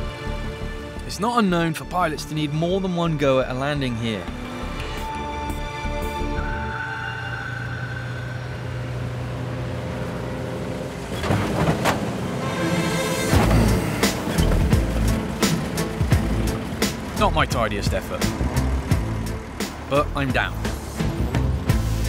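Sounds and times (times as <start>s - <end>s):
background music: 0.0s - 11.0s, 12.0s - 22.0s
aircraft wheels rumbling on grass: 9.8s - 19.9s.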